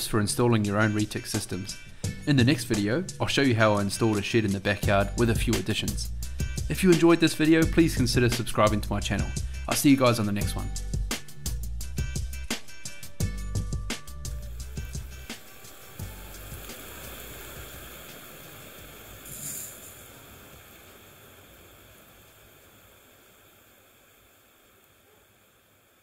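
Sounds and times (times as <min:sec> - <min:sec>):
sprinkler spraying water hiss: 0:00.0 - 0:08.8, 0:09.4 - 0:26.0
background music: 0:00.0 - 0:19.7
short sharp hiss: 0:13.9 - 0:25.6.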